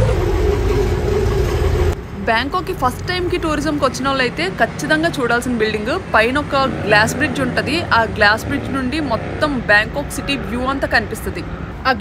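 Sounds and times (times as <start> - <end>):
bus engine rumbling: 0.0 - 12.0.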